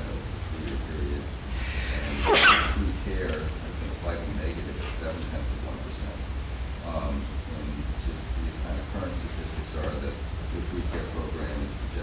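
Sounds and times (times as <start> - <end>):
person sneezing: 1.6 - 2.8.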